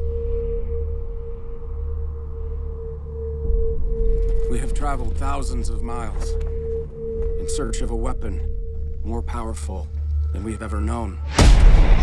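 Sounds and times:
heavy low hit: 11.3s - 12.0s.

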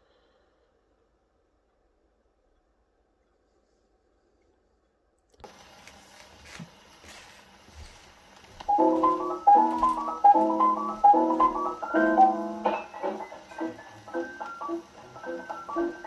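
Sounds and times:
record surface hiss and crackle: 1.8s - 16.0s
jazz piano recording: 8.6s - 16.0s.

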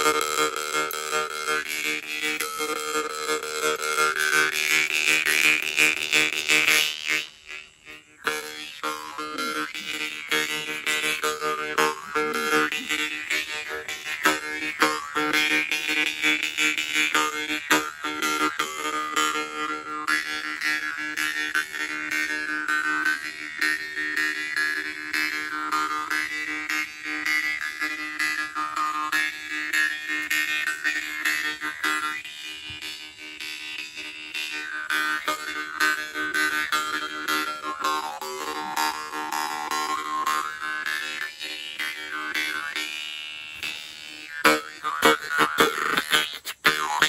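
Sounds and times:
jaw harp drone: 0.0s - 47.0s.

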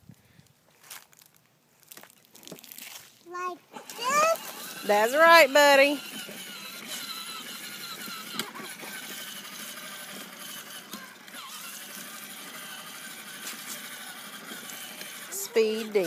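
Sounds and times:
plastic wheels rolling on concrete: 0.8s - 16.0s
electric motor whine: 3.7s - 16.0s.

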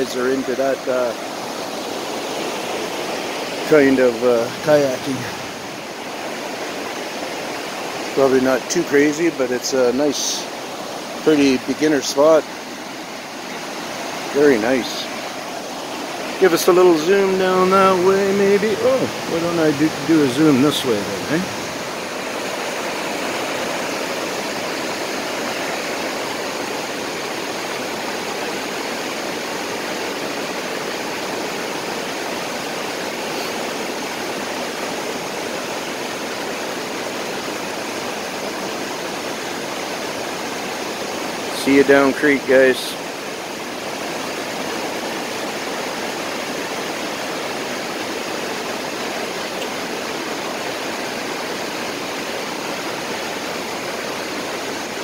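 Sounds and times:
creek water rushing over rapids: 0.0s - 55.0s.

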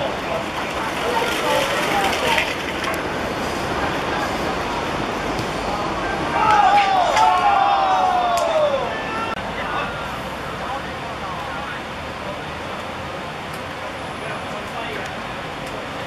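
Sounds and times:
background noise: 0.0s - 16.0s
players calling out: 5.3s - 10.2s
drawn-out shouting: 6.0s - 10.2s.

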